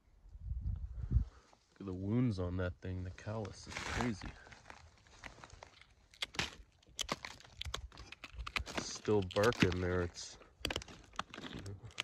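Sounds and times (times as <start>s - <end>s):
footsteps on dry leaves: 3.6s - 11.6s.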